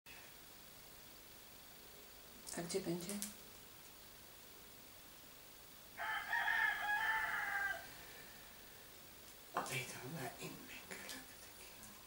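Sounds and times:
rooster crowing: 0:06.0 - 0:08.8.

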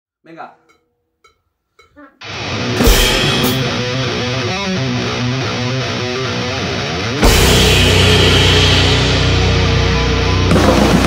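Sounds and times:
sparse drums: 0:01.8 - 0:04.4, 0:07.2 - 0:11.0
cymbal crashes: 0:02.2 - 0:04.6, 0:07.2 - 0:11.0
distorted electric guitar chords: 0:02.2 - 0:11.0.

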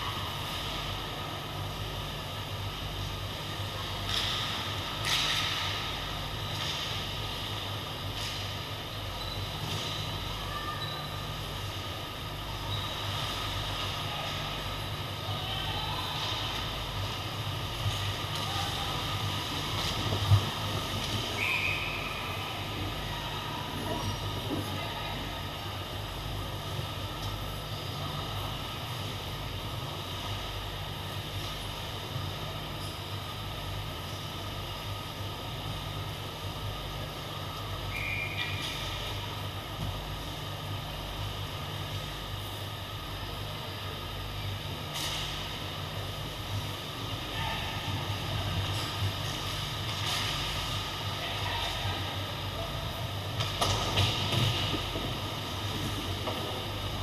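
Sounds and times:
low hum and echoing din: 0:00.0 - 0:57.0.

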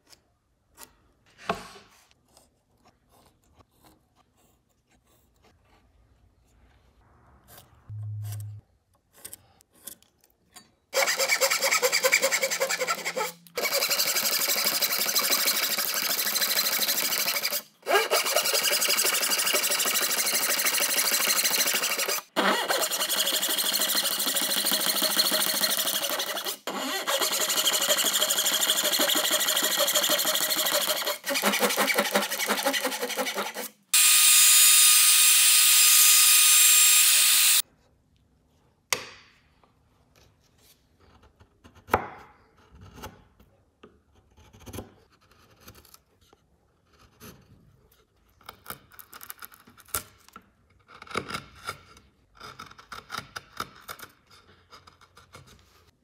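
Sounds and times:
hand saw cutting wood: 0:11.0 - 0:37.6.

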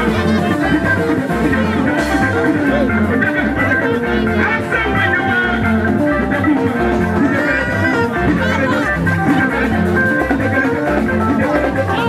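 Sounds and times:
bass guitar: 0:00.0 - 0:12.0
drum kit beat: 0:00.0 - 0:12.0
electric guitar lines: 0:00.0 - 0:12.0.

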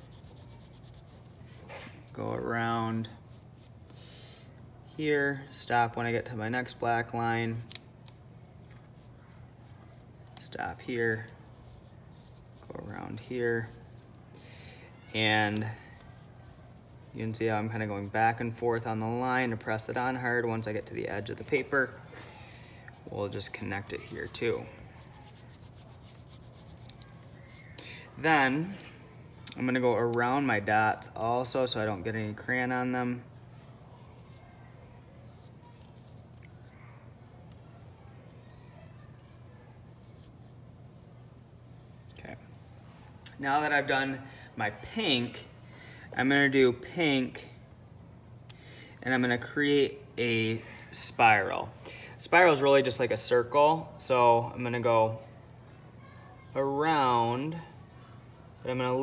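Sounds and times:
crayon scratching on paper: 0:00.0 - 0:02.1, 0:22.9 - 0:27.6.

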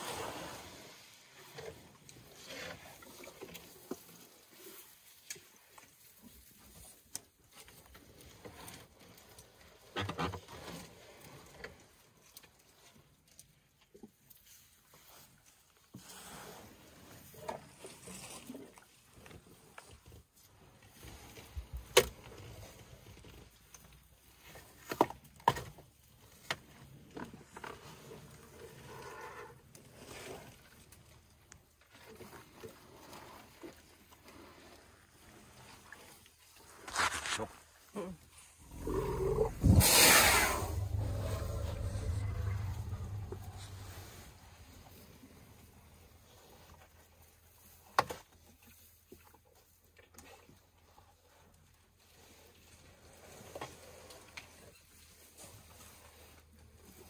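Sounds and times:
elephants chewing: 0:38.6 - 0:45.5
loud rushing burst: 0:38.7 - 0:44.6.

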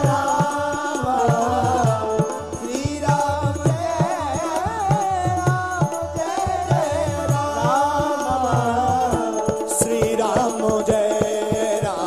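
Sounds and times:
drums beating: 0:00.0 - 0:12.0
man chanting into a microphone: 0:00.0 - 0:12.0.

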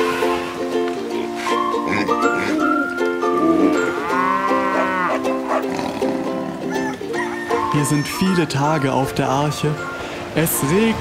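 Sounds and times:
background music: 0:00.0 - 0:11.0
cow mooing: 0:03.3 - 0:06.6.

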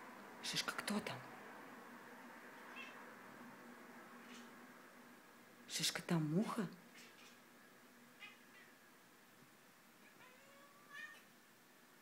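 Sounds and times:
cat making faint calls: 0:02.6 - 0:03.1, 0:08.2 - 0:08.8, 0:10.0 - 0:11.3.

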